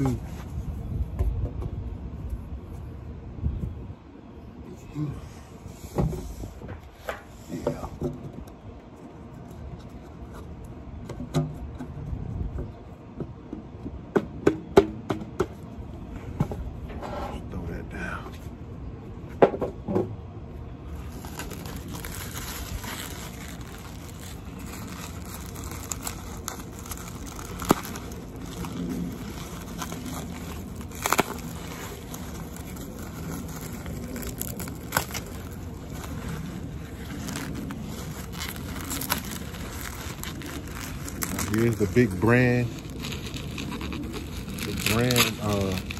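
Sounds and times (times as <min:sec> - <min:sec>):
bubble wrap crinkling: 0:20.8 - 0:45.9
cardboard tube scraping: 0:20.8 - 0:45.9.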